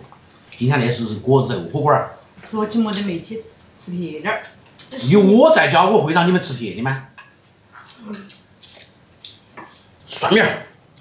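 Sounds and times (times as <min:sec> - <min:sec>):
chopsticks clinking on bowls: 0:07.2 - 0:10.2.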